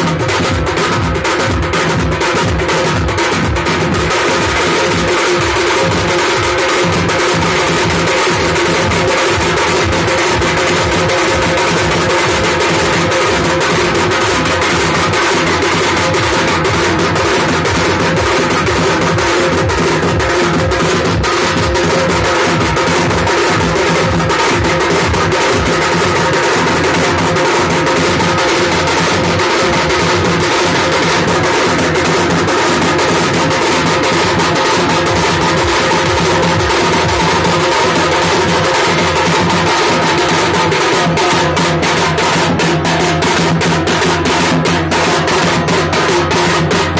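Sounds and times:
barrel drum beaten with sticks: 0:00.0 - 0:46.9.

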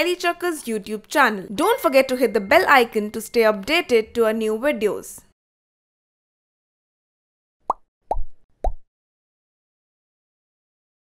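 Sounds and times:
cartoon pop bloops: 0:07.7 - 0:08.8.

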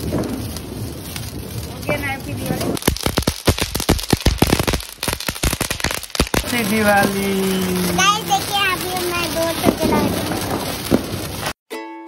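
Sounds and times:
crackling pops: 0:00.0 - 0:11.6
fountain firework spraying sparks: 0:00.0 - 0:11.6.

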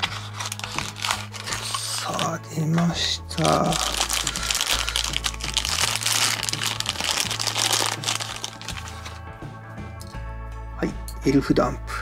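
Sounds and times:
plastic bag crinkling: 0:00.0 - 0:02.4, 0:03.3 - 0:09.2
background music: 0:00.0 - 0:12.0.

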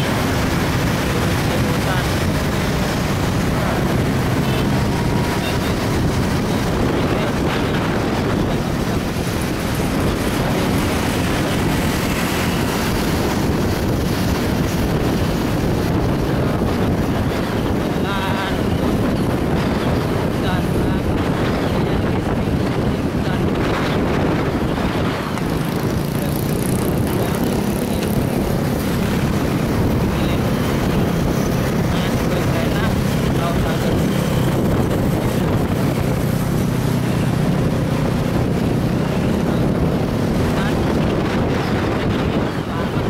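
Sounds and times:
traffic engine and road noise: 0:00.0 - 0:43.0
wind rush on microphone: 0:00.0 - 0:43.0.

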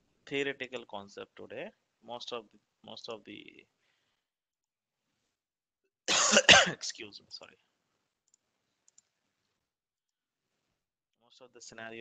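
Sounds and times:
faint computer mouse clicks: 0:08.3 - 0:09.2.

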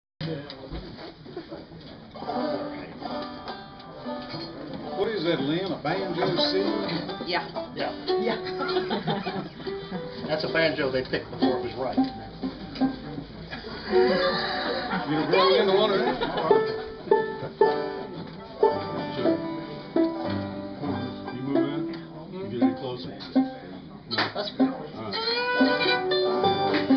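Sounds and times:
old-time string band playing: 0:01.2 - 0:26.9
acoustic guitar plucked and strummed: 0:02.1 - 0:13.6, 0:16.5 - 0:26.9.

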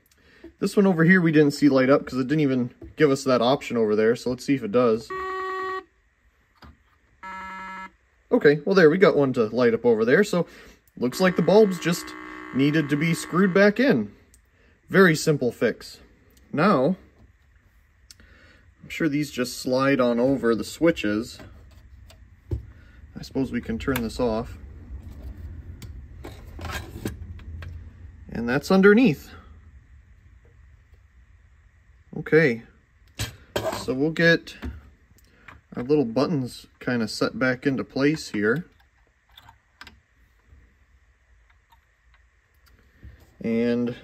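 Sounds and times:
buzzy electronic tone: 0:05.1 - 0:05.9, 0:11.0 - 0:14.1.

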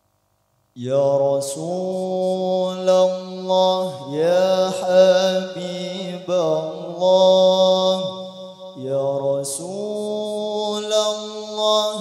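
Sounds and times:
low held tone: 0:00.8 - 0:10.1
man singing into microphone: 0:00.8 - 0:12.0.

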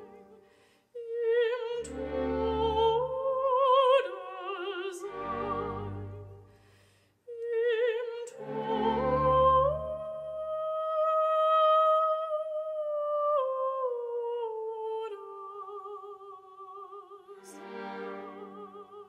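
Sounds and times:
operatic soprano singing: 0:00.0 - 0:06.4, 0:07.3 - 0:19.0
soft orchestral accompaniment: 0:00.0 - 0:06.8, 0:07.6 - 0:12.1, 0:16.8 - 0:19.0.

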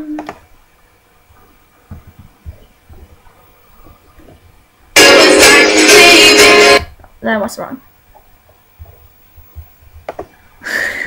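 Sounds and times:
loud recorded music: 0:05.0 - 0:06.9.

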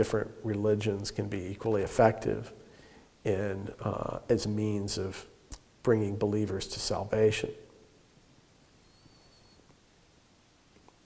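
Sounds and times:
faint high-pitched whistle: 0:08.7 - 0:09.8.

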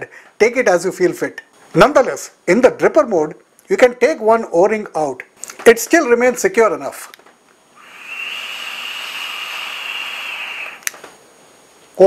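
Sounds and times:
airy hiss of vape draw: 0:07.8 - 0:11.2.

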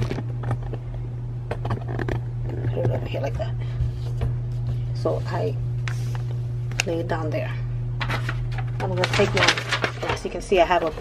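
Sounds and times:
steady low hum: 0:00.0 - 0:11.0
paper rustling: 0:08.0 - 0:11.0.

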